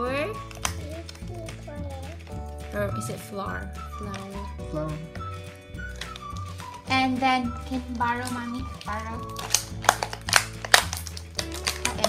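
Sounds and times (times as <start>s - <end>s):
background music: 0.0s - 12.0s
plastic packaging crackling: 0.3s - 2.2s, 5.3s - 12.0s
sharp plastic snaps: 0.4s - 2.2s, 8.2s - 12.0s.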